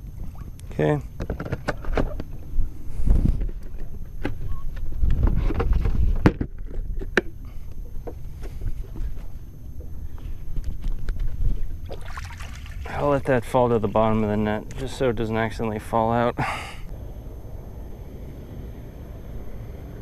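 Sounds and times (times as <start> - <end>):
wind rumbling on microphone: 1.4 - 7.1, 9.9 - 12.0.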